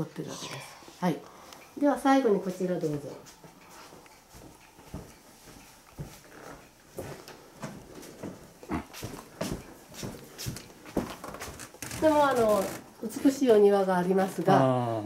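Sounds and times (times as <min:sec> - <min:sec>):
footsteps on wooden floor: 0:02.4 - 0:12.9.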